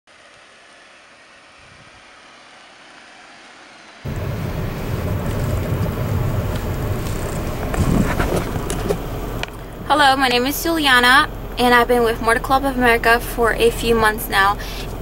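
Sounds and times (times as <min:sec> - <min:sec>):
faint outdoor sound: 0:00.1 - 0:15.0
road and wind noise inside car: 0:00.1 - 0:15.0.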